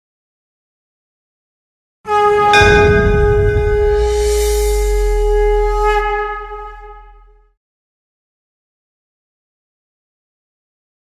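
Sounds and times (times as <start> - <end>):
ringing bell-like tone: 2.5 - 6.6
bright hit: 2.5 - 7.4
deep low rumble: 2.6 - 7.5.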